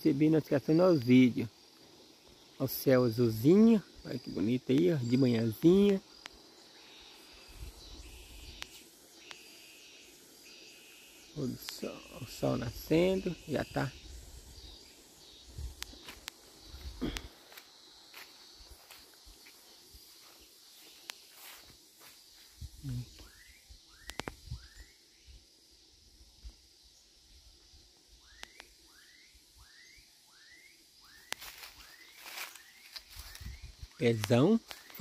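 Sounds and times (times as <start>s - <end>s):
quiet outdoor ambience: 0.0s - 35.0s.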